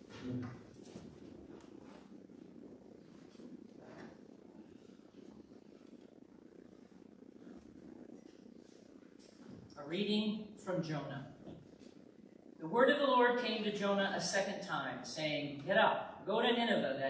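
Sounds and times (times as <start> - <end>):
soft footsteps and shuffling: 0.0 - 9.8, 11.2 - 12.6
faint low hum: 0.0 - 17.0
person reading aloud: 9.8 - 11.3, 12.6 - 17.0.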